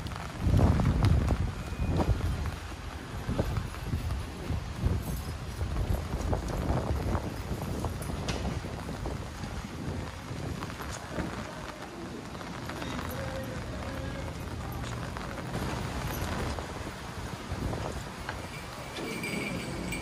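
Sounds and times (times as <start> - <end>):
footsteps on pavement: 0.0 - 12.0
wind rumbling on microphone: 0.0 - 20.0.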